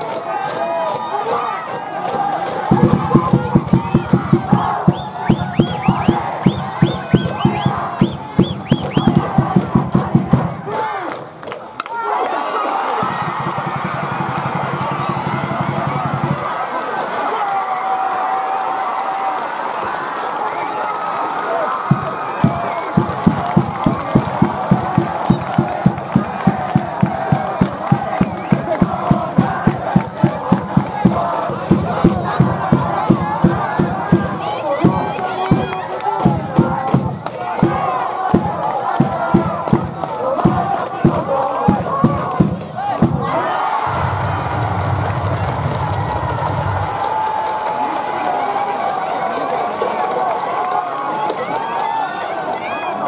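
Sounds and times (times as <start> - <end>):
crowd chanting and cheering: 0.0 - 53.0
fast drum beat: 2.6 - 10.7, 13.0 - 16.5, 21.9 - 44.1.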